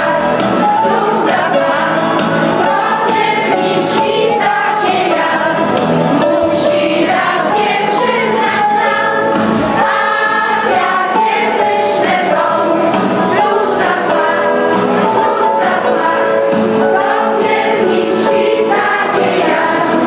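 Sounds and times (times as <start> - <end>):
choir singing a carol: 0.0 - 20.0.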